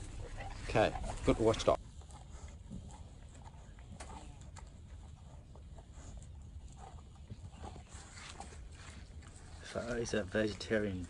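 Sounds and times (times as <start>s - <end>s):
dog chewing watermelon rind: 0.0s - 11.0s.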